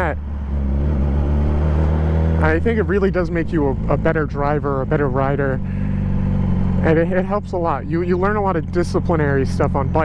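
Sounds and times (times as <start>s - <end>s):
motorcycle engine cruising: 0.0s - 10.0s
wind and road noise: 0.0s - 10.0s.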